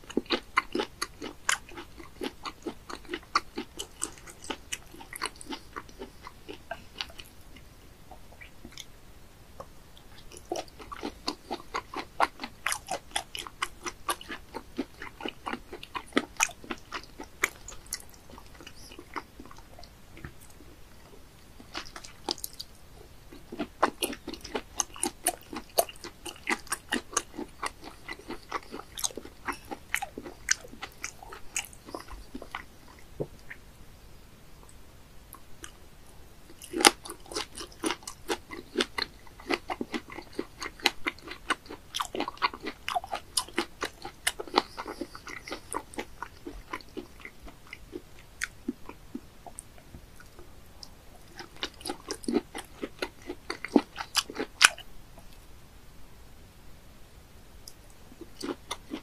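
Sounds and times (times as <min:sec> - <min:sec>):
person chewing raw fish: 0:00.0 - 0:08.9, 0:10.0 - 0:33.6, 0:36.4 - 0:55.4, 0:57.7 - 0:59.0.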